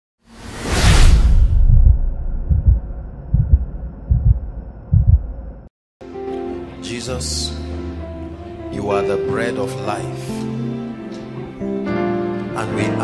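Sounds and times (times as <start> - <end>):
whoosh: 0.3 - 3.9
deep boom: 0.8 - 5.7
low thuds: 0.9 - 5.7.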